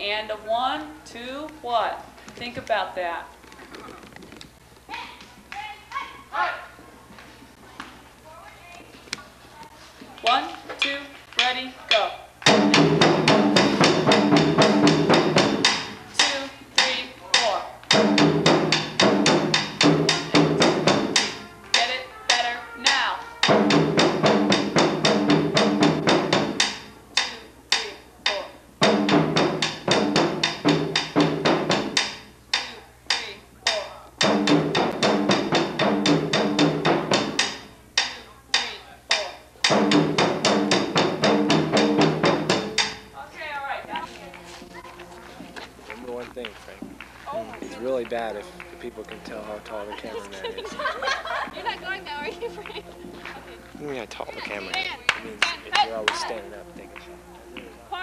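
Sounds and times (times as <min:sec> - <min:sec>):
fast drumming: 0:12.4 - 0:43.1, 0:54.4 - 0:56.4.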